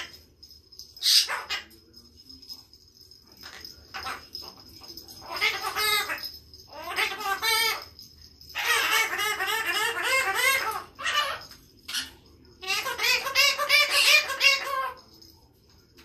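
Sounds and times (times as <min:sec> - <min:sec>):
parrot chattering: 0:00.0 - 0:00.2, 0:00.9 - 0:01.8, 0:03.4 - 0:15.1.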